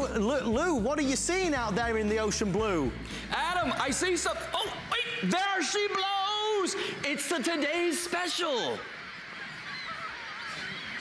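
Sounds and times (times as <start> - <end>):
gulls crying: 3.4 - 11.0.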